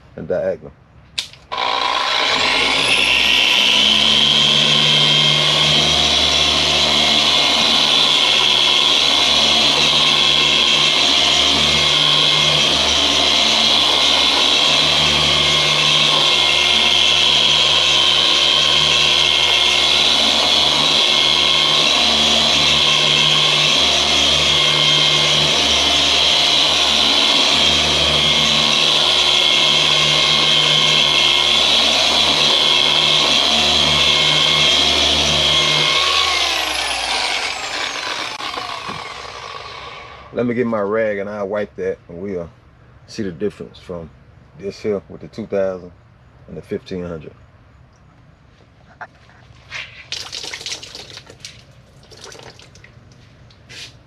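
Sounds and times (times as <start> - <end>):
sander whining: 1.5 - 40.9.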